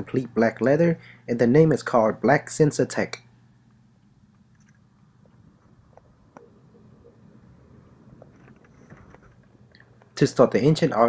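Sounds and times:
car cabin low hum: 0:05.3 - 0:09.7
faint handling clicks and rustles: 0:08.1 - 0:10.2.

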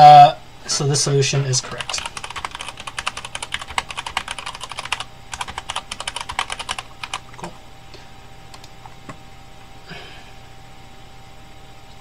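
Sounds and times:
typing on computer keyboard: 0:01.7 - 0:07.2.

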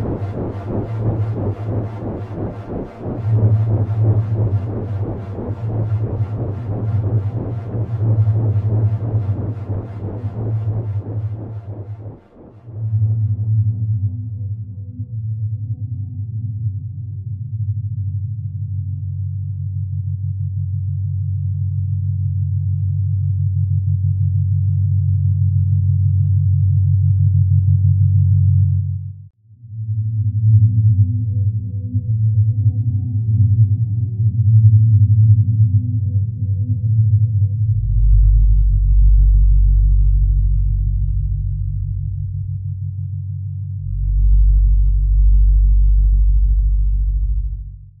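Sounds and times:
deep bass tone: 0:00.0 - 0:48.0
synthesizer drone with fast pulse: 0:00.0 - 0:48.0.

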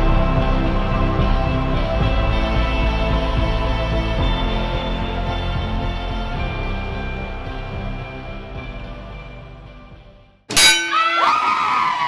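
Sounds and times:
sweeping gliding tones: 0:00.0 - 0:09.9
music: 0:00.0 - 0:10.5
loud metallic clang with ringing: 0:10.5 - 0:11.0.

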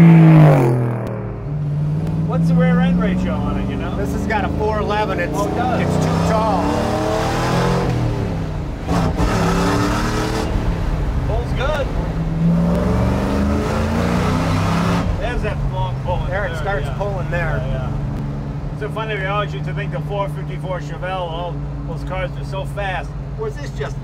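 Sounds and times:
car engine accelerating: 0:00.0 - 0:24.0
wind and road noise: 0:00.0 - 0:24.0.

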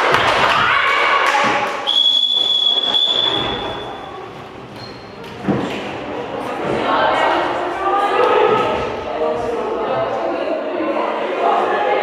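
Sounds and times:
referee's whistle long note: 0:01.9 - 0:03.8.

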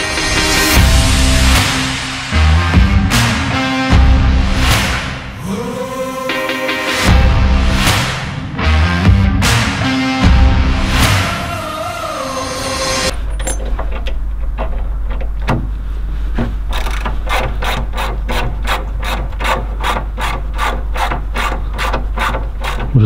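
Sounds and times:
music: 0:00.0 - 0:13.2
hand ratchet clicking: 0:16.7 - 0:23.0.

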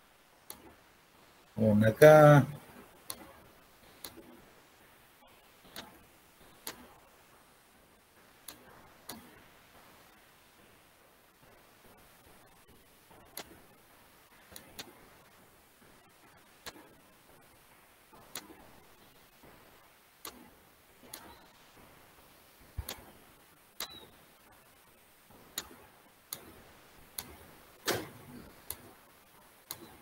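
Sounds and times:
computer mouse clicks: 0:00.5 - 0:00.7, 0:03.1 - 0:04.4, 0:05.6 - 0:06.9, 0:08.4 - 0:09.4, 0:13.3 - 0:13.6, 0:14.5 - 0:14.9, 0:16.6 - 0:17.0, 0:18.2 - 0:18.6, 0:20.2 - 0:21.5, 0:22.8 - 0:23.2, 0:23.8 - 0:24.1, 0:25.4 - 0:29.0, 0:29.7 - 0:30.0.

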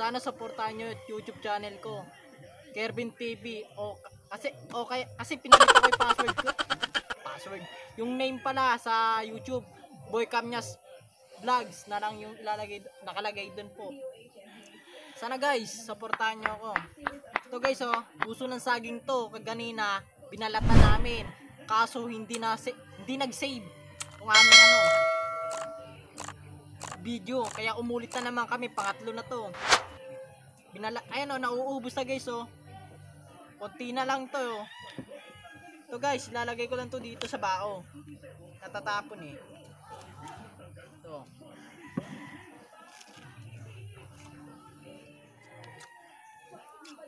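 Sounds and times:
rooster crowing: 0:05.5 - 0:08.4, 0:41.6 - 0:42.6
bell chime: 0:24.3 - 0:25.9.

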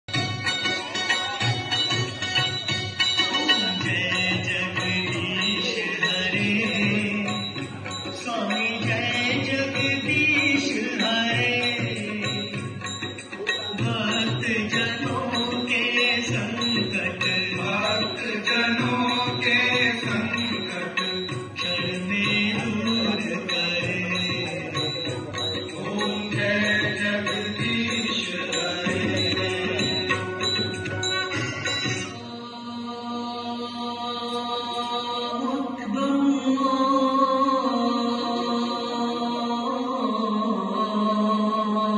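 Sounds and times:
music: 0:00.0 - 0:41.9
song with chant-like singing: 0:00.1 - 0:41.9.

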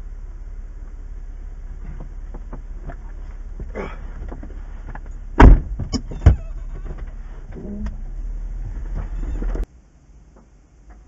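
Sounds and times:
steady low rumble: 0:00.0 - 0:10.9
sharp knocks inside car: 0:01.8 - 0:07.2.

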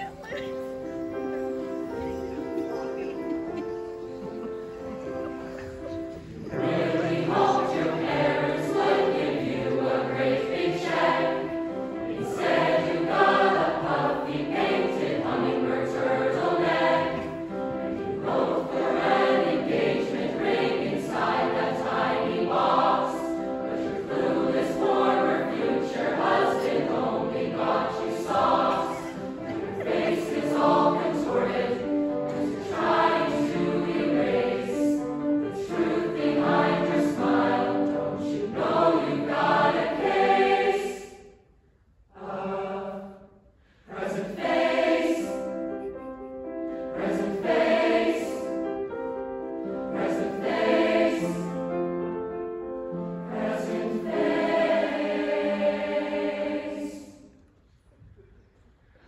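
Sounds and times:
mixed choir singing: 0:04.4 - 0:41.5, 0:42.1 - 0:57.4.

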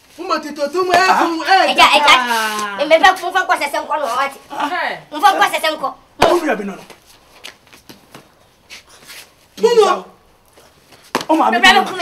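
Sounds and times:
rustles: 0:06.7 - 0:09.6.

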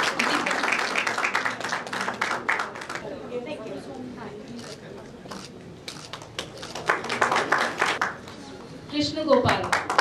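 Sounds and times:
people clapping: 0:00.0 - 0:03.1, 0:05.9 - 0:10.0.

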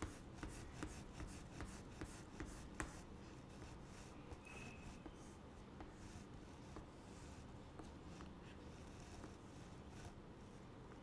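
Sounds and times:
sharp chalk tap: 0:00.0 - 0:06.9
chalk scratching on chalkboard: 0:00.0 - 0:10.7.

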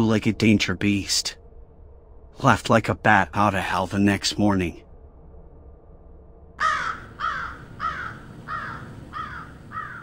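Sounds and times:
bird calling: 0:06.6 - 0:10.0.

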